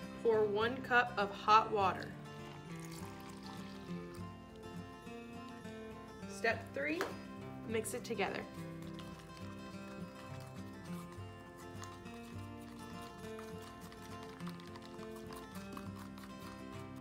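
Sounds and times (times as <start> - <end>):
mellow background music: 0.0 - 17.0.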